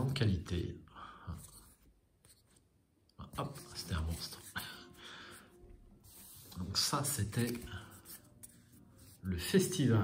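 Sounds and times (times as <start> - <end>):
playing cards rustling: 1.4 - 4.9, 6.0 - 9.7.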